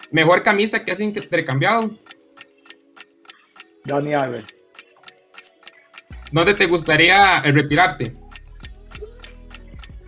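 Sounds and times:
clock ticking: 0.0s - 10.0s.

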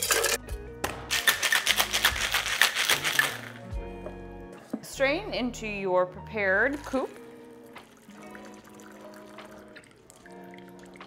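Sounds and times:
ice clattering into metal shaker: 0.0s - 0.4s, 1.1s - 3.6s
ice rattling in shaken shaker: 1.1s - 3.6s.

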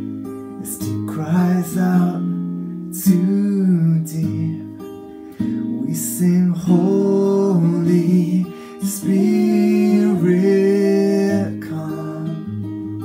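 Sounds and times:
strummed acoustic guitar: 0.0s - 13.0s
man singing worship song: 5.8s - 12.5s.

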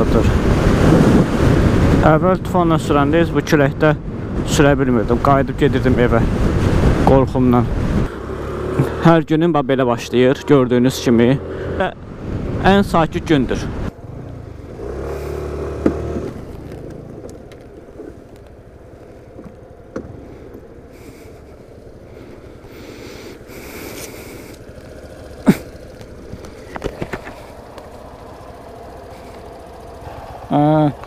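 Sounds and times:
road and wind noise: 0.0s - 31.0s
scooter engine: 7.8s - 9.2s, 9.9s - 12.2s, 13.8s - 31.0s.

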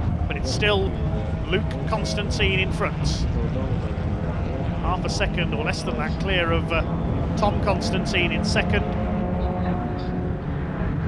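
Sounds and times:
racing car engines droning: 0.0s - 11.0s
commentator talking: 0.3s - 6.8s, 7.4s - 10.2s.

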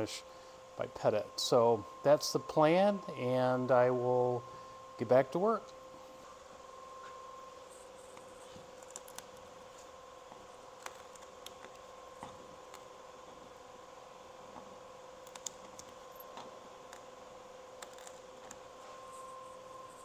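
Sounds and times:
faint steady hum: 0.0s - 20.0s.

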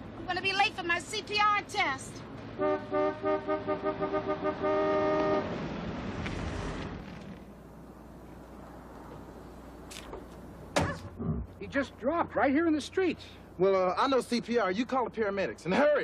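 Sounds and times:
car horn honking: 2.6s - 5.5s.

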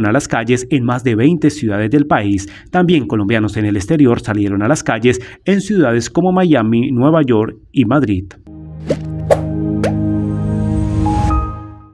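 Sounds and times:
quick rising blips: 8.9s - 10.0s.

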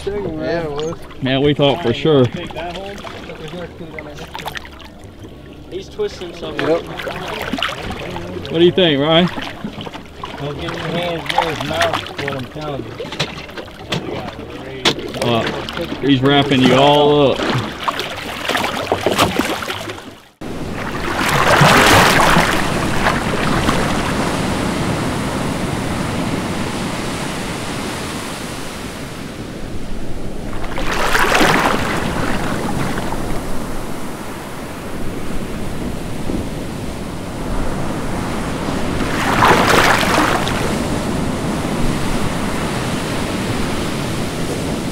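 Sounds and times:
ocean waves breaking: 0.0s - 44.9s.

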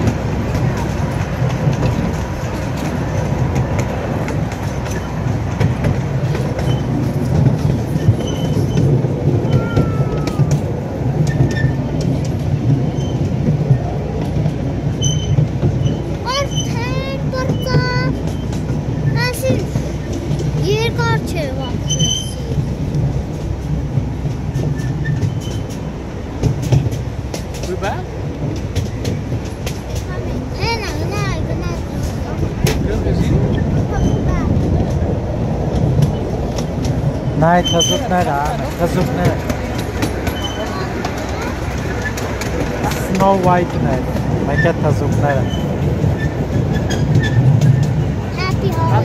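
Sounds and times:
vehicle rumble: 0.0s - 49.0s.

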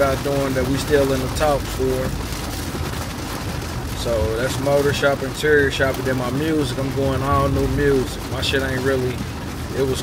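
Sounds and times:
road and engine noise in car: 0.0s - 10.0s.

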